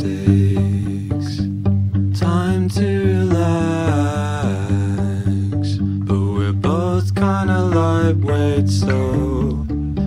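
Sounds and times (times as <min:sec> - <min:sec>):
indie pop song with vocals: 0:00.0 - 0:10.0.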